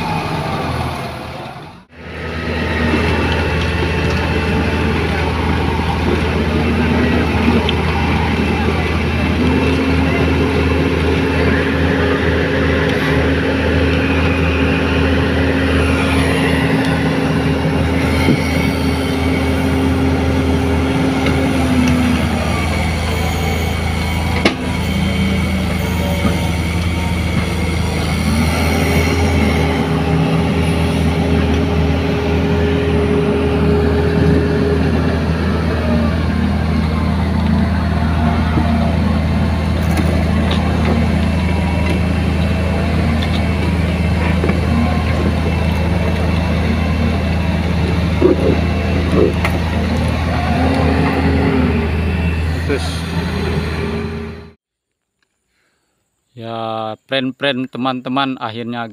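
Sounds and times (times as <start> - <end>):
diesel engines running hard: 0.0 - 54.6.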